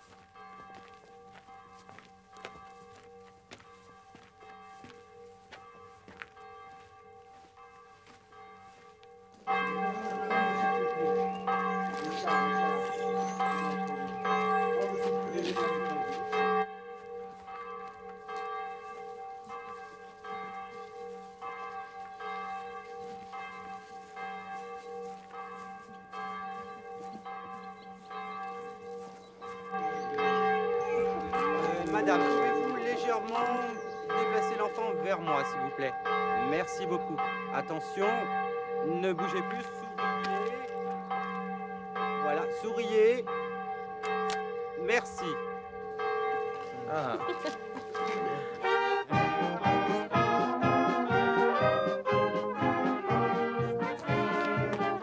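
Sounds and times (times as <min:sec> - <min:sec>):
church bells ringing: 0:00.0 - 0:55.0.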